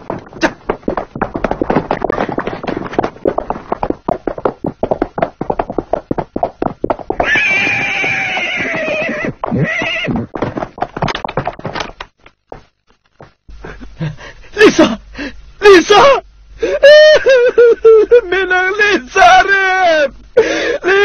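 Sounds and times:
galloping horse hoofbeats: 0.0s - 13.4s
horse neighing: 7.2s - 10.4s.

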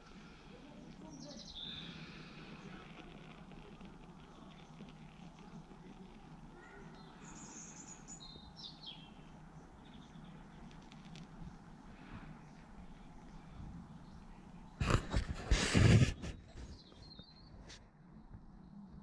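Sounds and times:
steady low hum: 0.0s - 16.6s.

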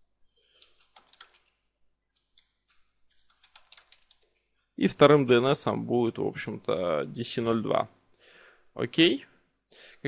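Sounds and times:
keyboard typing: 0.6s - 4.5s
man speaking: 4.8s - 8.0s, 8.8s - 9.4s.

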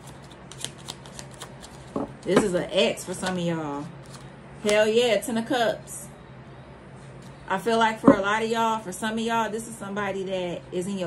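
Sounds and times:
cards being shuffled: 0.0s - 2.2s, 4.0s - 4.8s.

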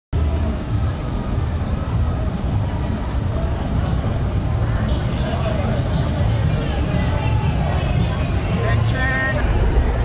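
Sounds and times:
faint voices: 0.2s - 10.0s
vehicle and street rumble: 0.2s - 10.0s.

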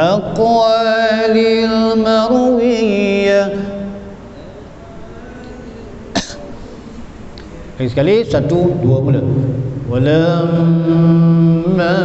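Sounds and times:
man clearing throat: 6.1s - 6.6s.

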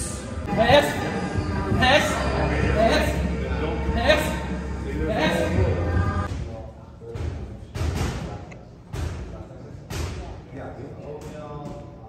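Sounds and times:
indistinct voices: 0.0s - 6.4s.

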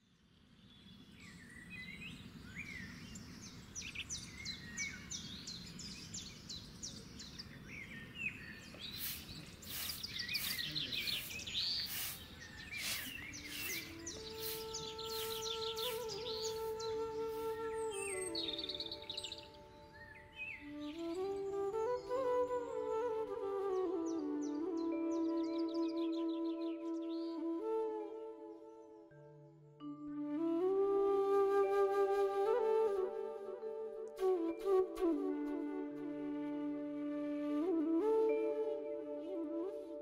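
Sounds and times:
small birds chirping: 0.2s - 22.2s
flute-like melody: 8.6s - 40.0s.

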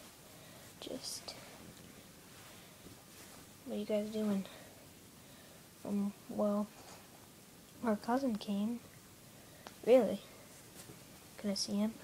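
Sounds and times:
low room noise: 0.0s - 12.0s
person whispering: 0.8s - 1.6s.

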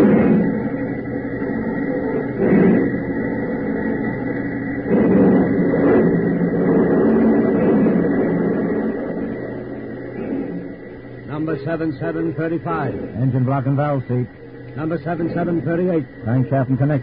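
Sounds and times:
assembly line machinery din: 0.0s - 17.0s.

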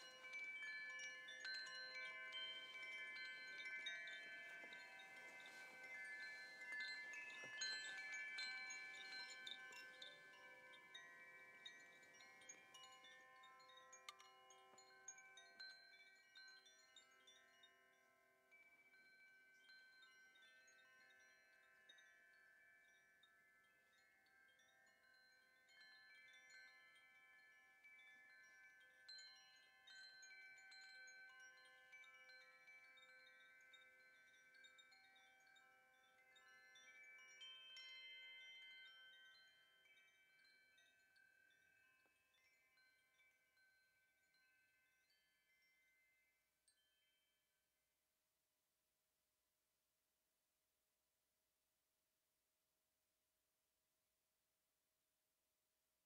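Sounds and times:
metal wind chime ringing: 0.0s - 47.1s.

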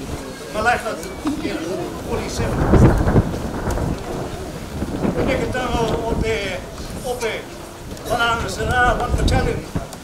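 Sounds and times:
man's voice: 0.0s - 3.3s, 5.0s - 10.0s
wind buffeting microphone: 0.0s - 10.0s.

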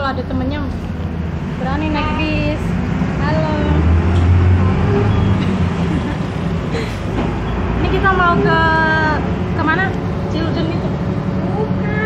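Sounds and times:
bus engine rumble from inside: 0.0s - 12.0s.

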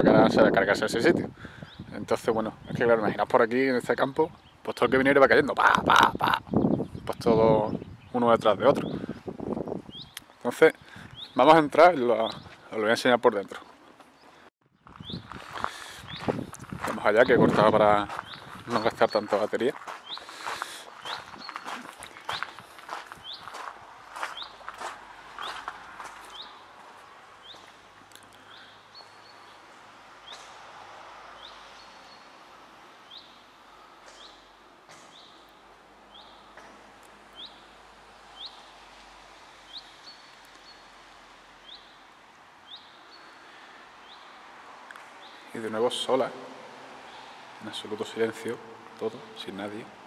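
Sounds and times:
footsteps on gravel: 13.5s - 27.8s.

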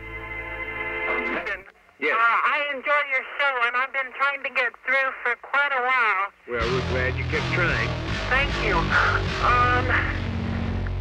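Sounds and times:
bass-heavy music track: 6.6s - 11.0s.

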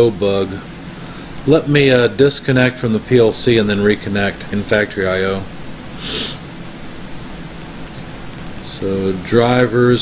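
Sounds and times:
man speaking: 0.0s - 0.7s, 1.4s - 5.5s, 8.6s - 10.0s
recording hiss: 0.0s - 10.0s.

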